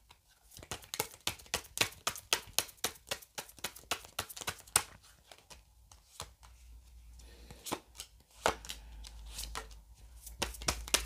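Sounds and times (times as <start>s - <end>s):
cards being shuffled: 0.1s - 6.6s, 7.6s - 11.0s.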